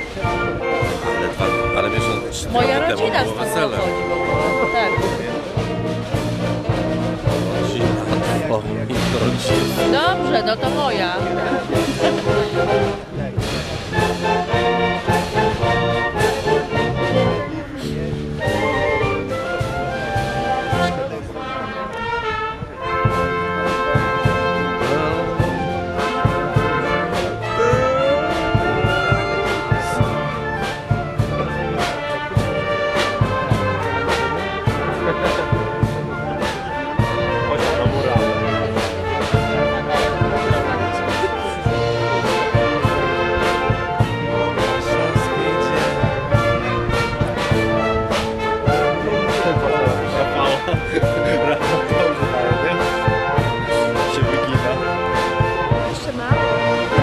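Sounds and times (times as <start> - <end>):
drum beats: 0.0 - 57.0
wind band playing a march: 0.0 - 57.0.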